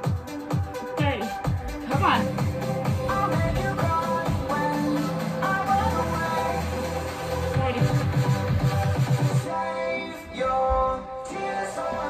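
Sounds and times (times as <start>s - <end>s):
pulsing bass beat: 0.0s - 9.5s
held synth chords: 0.7s - 9.5s.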